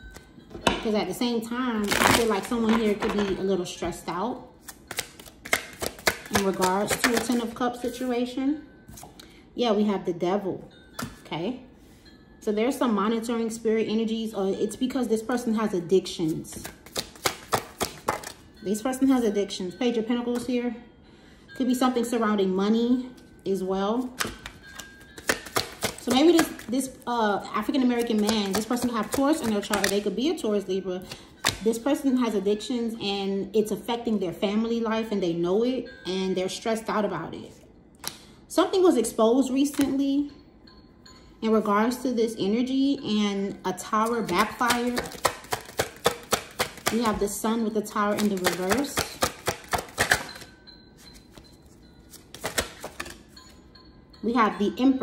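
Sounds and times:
faint background music: 0.0s - 55.0s
cards clicking on a table: 4.9s - 7.4s, 16.6s - 18.4s, 25.2s - 26.7s, 44.3s - 47.2s, 48.1s - 50.5s, 52.1s - 53.2s.

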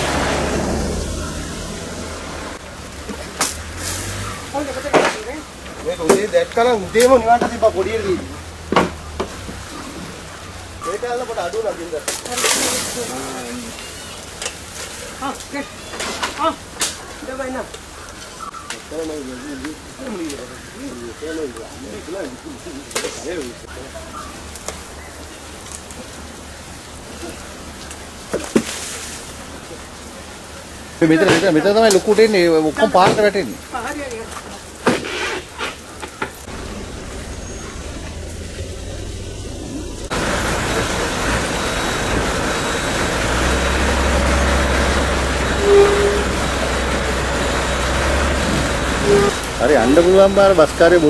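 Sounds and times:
bus engine rumble: 0.0s - 51.0s
fire hissing: 0.0s - 51.0s
fire crackling pops: 2.6s - 20.5s, 21.5s - 44.0s
bus horn toot: 45.5s - 47.2s, 49.0s - 49.6s.

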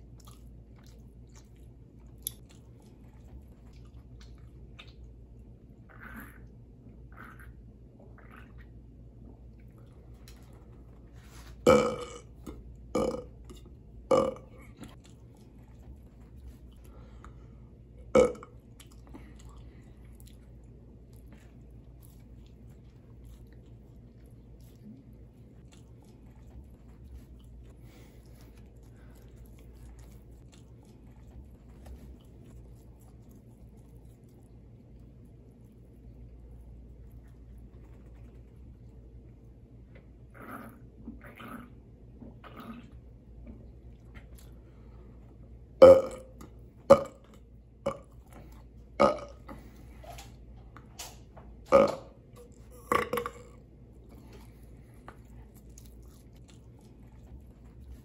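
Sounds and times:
faint chewing: 0.0s - 58.0s
man burping loudly: 11.7s - 12.3s, 13.0s - 13.3s, 14.1s - 14.4s, 49.0s - 49.4s, 52.8s - 53.5s.

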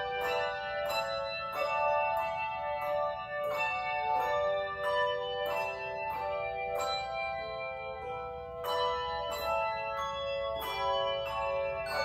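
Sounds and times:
handbell chords ringing: 0.0s - 12.0s.

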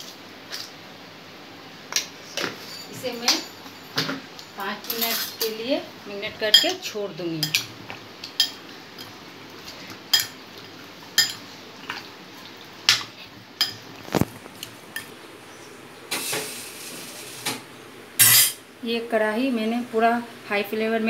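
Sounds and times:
spoon clinking on glass bowl: 11.2s - 11.4s.

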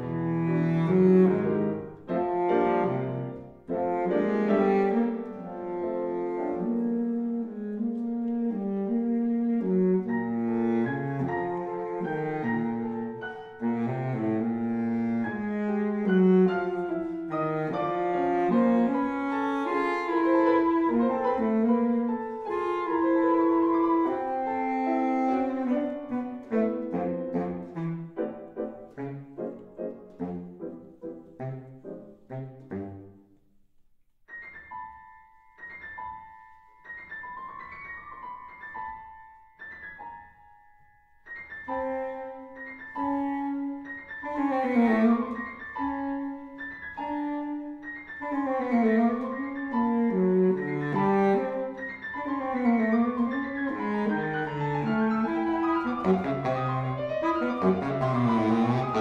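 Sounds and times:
baritone saxophone melody: 0.0s - 33.3s, 41.6s - 59.0s
piano playing: 0.0s - 33.4s, 34.2s - 59.0s.

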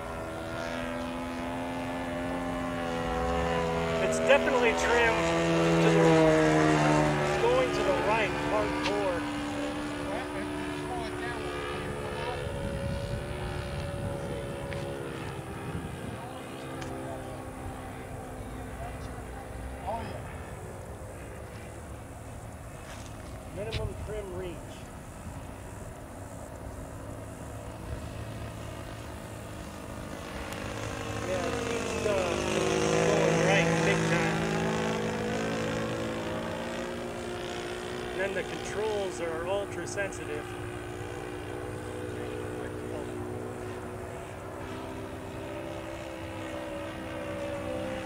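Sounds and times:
model plane engine droning: 0.0s - 48.0s.

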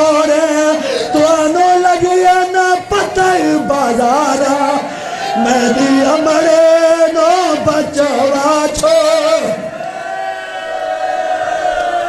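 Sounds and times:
men chanting one long note: 0.0s - 9.7s.

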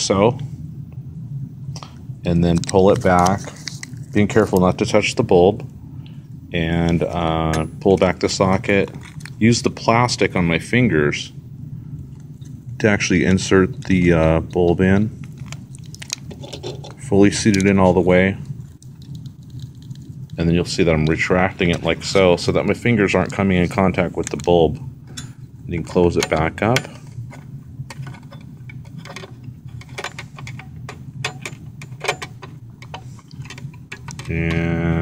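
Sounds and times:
low steady hum: 0.0s - 35.0s
plastic wrapper crinkling: 2.5s - 4.7s, 8.8s - 9.4s, 15.2s - 17.0s, 18.5s - 20.4s.

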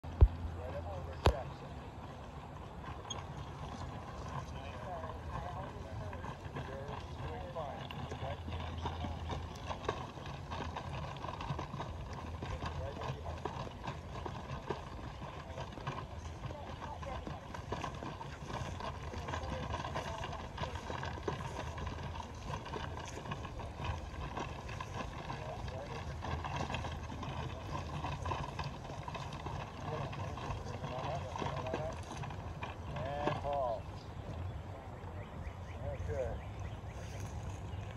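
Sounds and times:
horse hoofbeats on grass: 0.0s - 34.5s.

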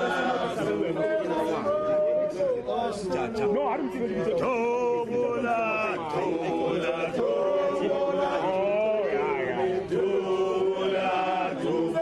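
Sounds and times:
crowd of men chanting: 0.0s - 1.9s, 4.4s - 12.0s.

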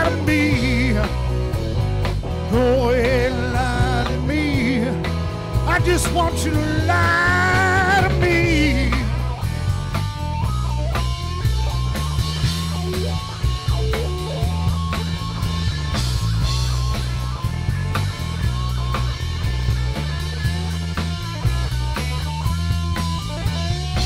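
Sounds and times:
bass guitar: 0.0s - 24.0s
drum kit: 0.0s - 24.0s
electric guitar lead: 0.0s - 24.0s.

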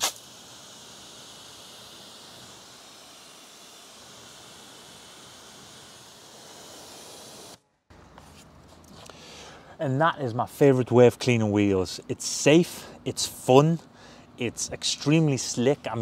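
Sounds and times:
foam fizzing: 0.0s - 7.2s.

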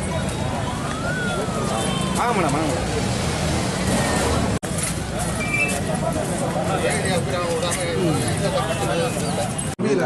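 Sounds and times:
street traffic: 0.0s - 10.0s
people talking: 5.1s - 10.0s.

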